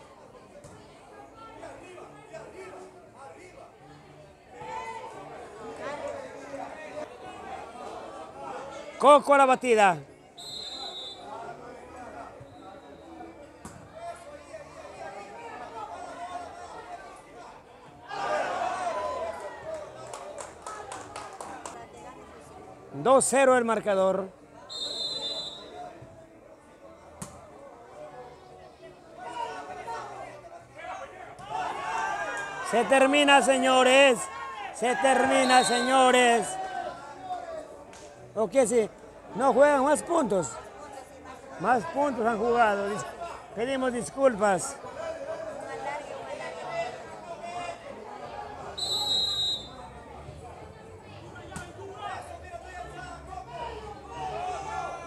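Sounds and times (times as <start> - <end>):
spectators chatting: 0.0 - 55.0
referee's whistle: 10.4 - 11.3, 12.4 - 13.3, 24.7 - 25.8, 35.1 - 36.2, 48.8 - 49.8.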